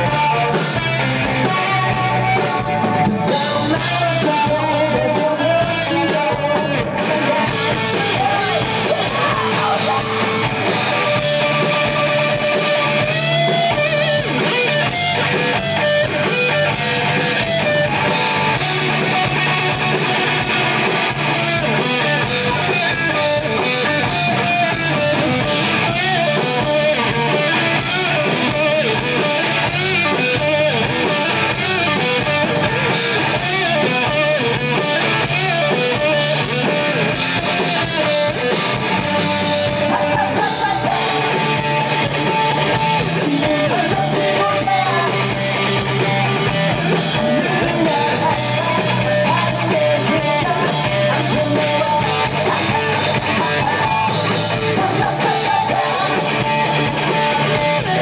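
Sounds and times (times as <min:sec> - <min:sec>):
bass guitar: 0:00.0 - 0:58.0
drums: 0:00.0 - 0:58.0
electric guitar: 0:00.0 - 0:58.0.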